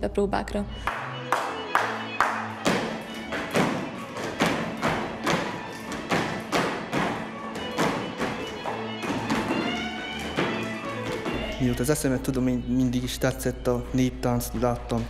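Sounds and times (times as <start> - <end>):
folk dance music: 0.8 - 15.0
shoes stamping on floor: 0.9 - 12.5.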